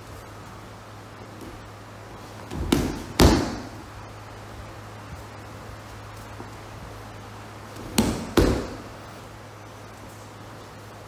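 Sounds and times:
body thudding on mats: 0:02.3 - 0:03.8, 0:07.7 - 0:08.9.

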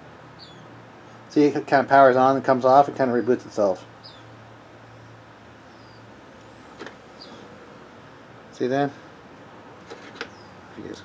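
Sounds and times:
steady low hum: 0:00.0 - 0:11.0
faint high chirp: 0:00.4 - 0:00.7, 0:05.7 - 0:06.1.

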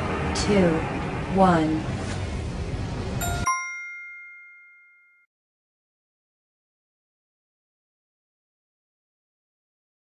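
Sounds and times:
bell-like ding: 0:03.2 - 0:05.3.

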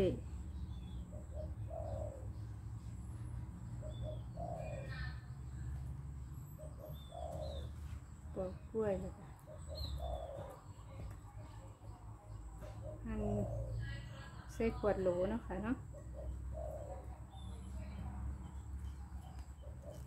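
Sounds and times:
small birds chirping: 0:00.0 - 0:20.0
dove cooing: 0:00.8 - 0:02.7, 0:03.7 - 0:05.4, 0:06.3 - 0:07.9, 0:09.0 - 0:11.0, 0:12.4 - 0:14.1, 0:14.9 - 0:17.6, 0:19.0 - 0:20.0.

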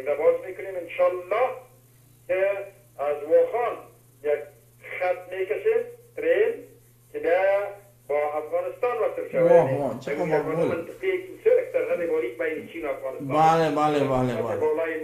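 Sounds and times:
low electrical hum: 0:00.0 - 0:15.0
man speaking: 0:07.2 - 0:15.0.

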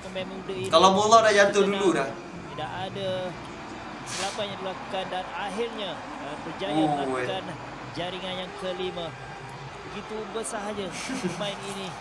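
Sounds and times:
background talk: 0:00.0 - 0:12.0
short hiss: 0:04.1 - 0:04.4.

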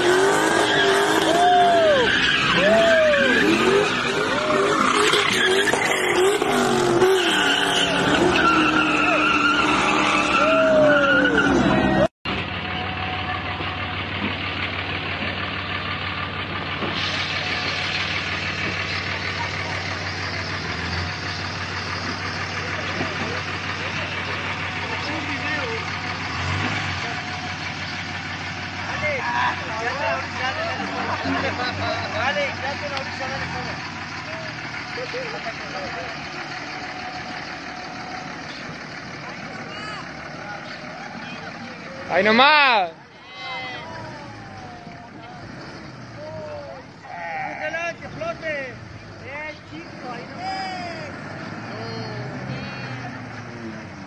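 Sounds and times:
car engine revving: 0:00.0 - 0:43.1, 0:43.7 - 0:54.0
outdoor noise: 0:00.0 - 0:54.0
tires squealing: 0:00.0 - 0:54.0.

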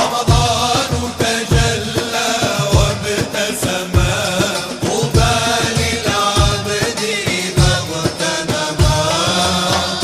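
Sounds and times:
men singing: 0:00.0 - 0:10.0.

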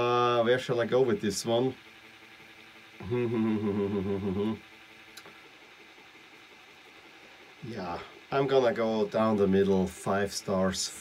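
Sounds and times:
man humming hmm: 0:03.0 - 0:04.6.

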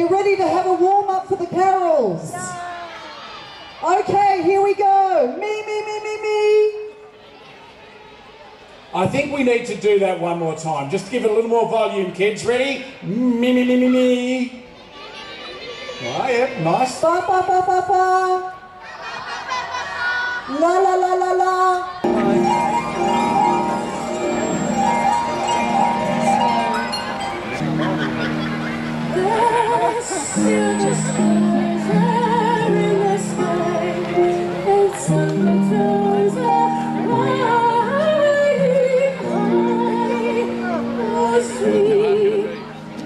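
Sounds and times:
woman singing into microphone: 0:20.5 - 0:22.0, 0:29.1 - 0:42.7
harps: 0:22.1 - 0:43.0
children singing: 0:29.2 - 0:40.4.

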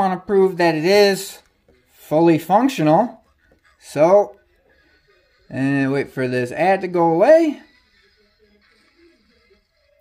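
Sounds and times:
faint music from phone speaker: 0:00.0 - 0:10.0.

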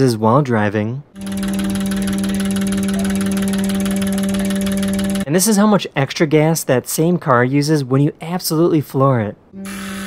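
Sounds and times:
fuel injectors clicking rapidly: 0:01.2 - 0:05.3
steady electric buzz: 0:01.2 - 0:05.3, 0:09.6 - 0:10.0.

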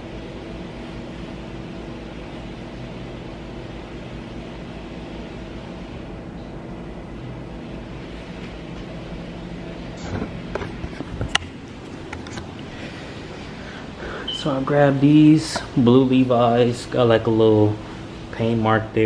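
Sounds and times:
steady mechanical hum: 0:00.0 - 0:19.0.

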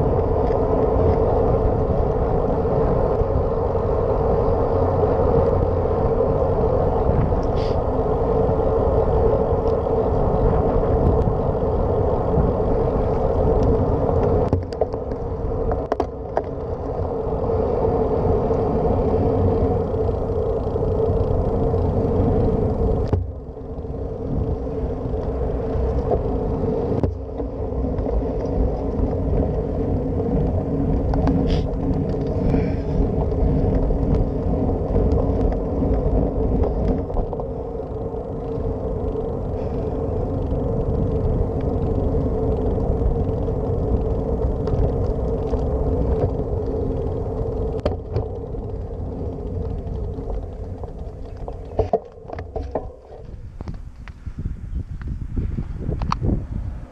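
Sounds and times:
bicycle tyres rolling on asphalt: 0:00.0 - 0:56.9
wind buffeting camera: 0:00.0 - 0:56.9.

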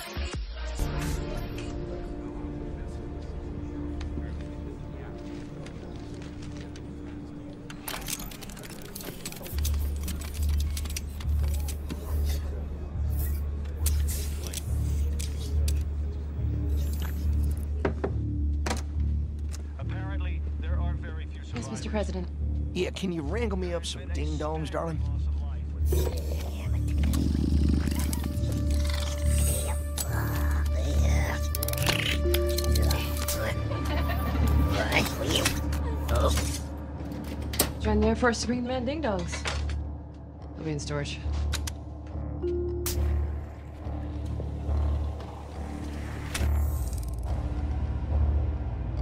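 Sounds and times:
orchestral score: 0:00.8 - 0:08.2, 0:27.9 - 0:38.3
mechanical clicks and clanks: 0:07.7 - 0:12.3
growling robotic chatter: 0:25.9 - 0:33.7
low throbbing pulse: 0:39.8 - 0:49.0
low drone: 0:41.5 - 0:49.0.

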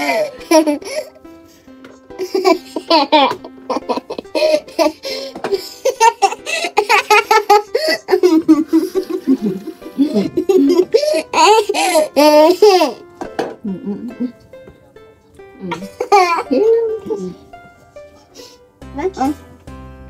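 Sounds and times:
girl laughing hard: 0:00.0 - 0:01.1, 0:02.2 - 0:13.0, 0:15.6 - 0:16.6
background music: 0:00.0 - 0:20.0.

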